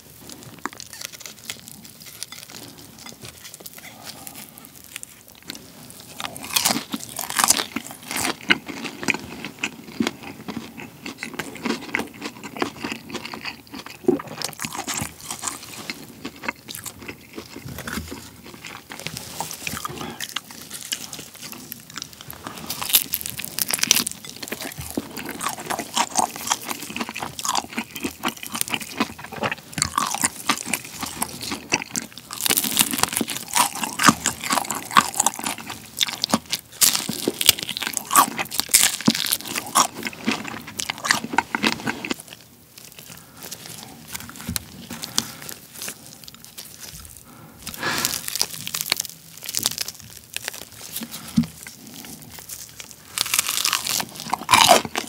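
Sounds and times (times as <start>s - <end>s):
crunching and chewing fried chicken: 0.0s - 55.0s.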